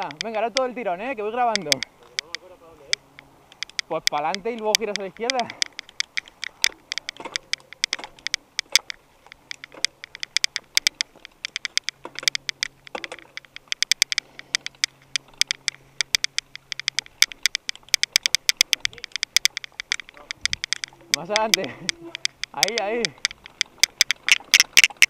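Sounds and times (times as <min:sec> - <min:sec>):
bike rattling on dirt trail: 0:00.0 - 0:25.0.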